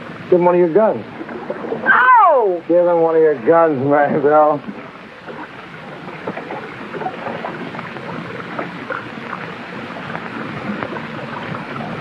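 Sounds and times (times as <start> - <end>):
water splashing against hull: 0.0 - 12.0
wind: 0.0 - 12.0.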